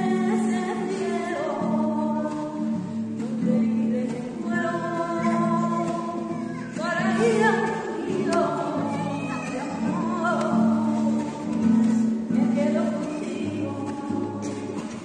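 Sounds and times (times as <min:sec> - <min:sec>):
flamenco-style singing: 0:00.0 - 0:15.0
guitar accompaniment: 0:00.0 - 0:15.0.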